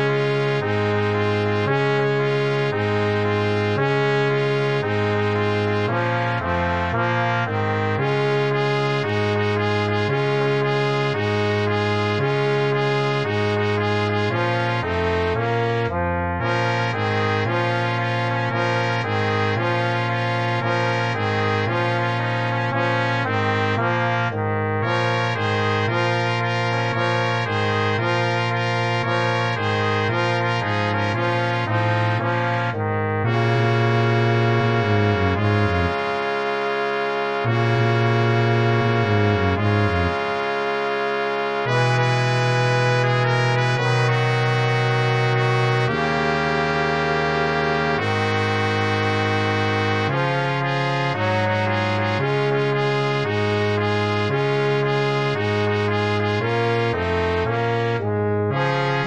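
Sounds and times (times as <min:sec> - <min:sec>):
brass quartet playing swing: 0:00.0 - 0:59.0
trombone and tuba holding notes: 0:00.0 - 0:59.0.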